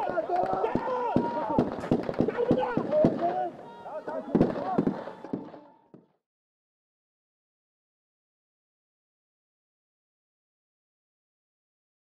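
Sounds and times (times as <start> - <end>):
rapid sharp bangs: 0.0 - 3.5, 4.1 - 5.7
voices shouting: 0.0 - 5.9.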